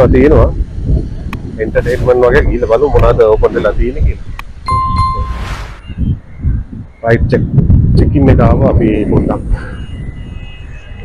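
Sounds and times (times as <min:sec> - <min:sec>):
low rumble: 0:00.5 - 0:08.1
short whoosh: 0:01.6 - 0:04.3, 0:05.0 - 0:06.2
bell ding: 0:04.7 - 0:05.5.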